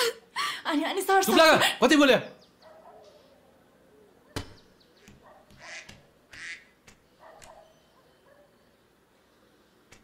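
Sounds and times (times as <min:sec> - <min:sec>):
duck quacking: 0:05.6 - 0:06.8.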